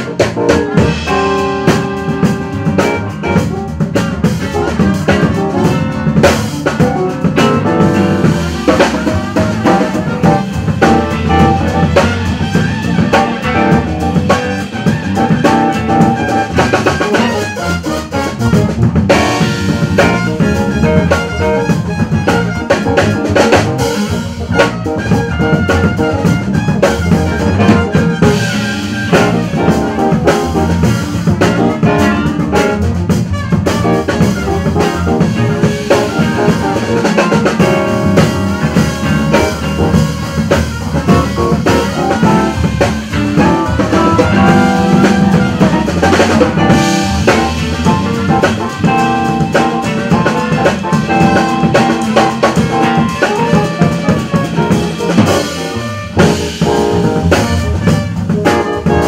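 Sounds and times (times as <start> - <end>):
drum kit: 0.0 - 59.0
jazz band playing funk groove: 0.0 - 59.0.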